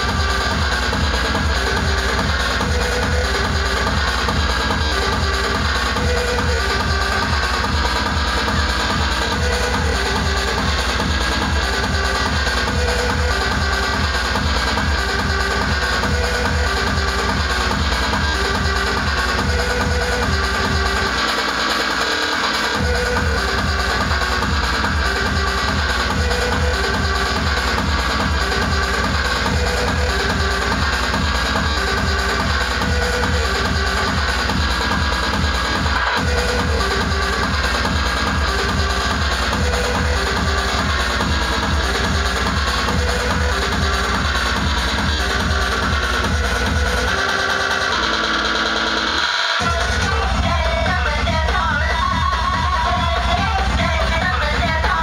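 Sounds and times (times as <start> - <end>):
deep bass: 0.0 - 55.0
loud electronic dance music: 0.0 - 55.0
steady kick drum: 0.0 - 55.0.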